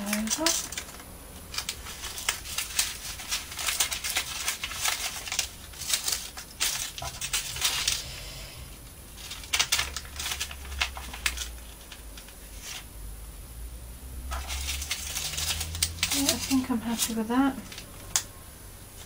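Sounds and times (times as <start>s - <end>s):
paper crinkling: 0.0s - 8.1s, 9.2s - 12.9s, 14.3s - 18.3s.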